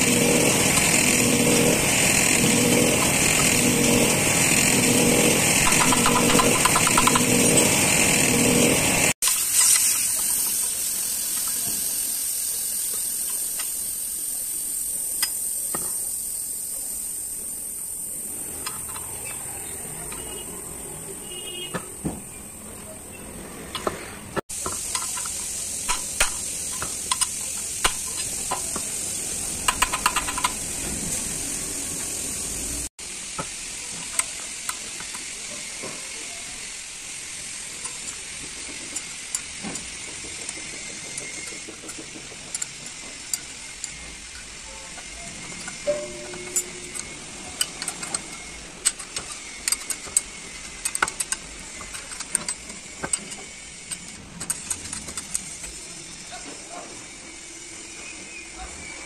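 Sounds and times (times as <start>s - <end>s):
spanner clinking on metal bolts: 5.6s - 7.7s, 29.7s - 30.6s, 41.2s - 55.5s
steady high-pitched hiss: 9.4s - 18.6s.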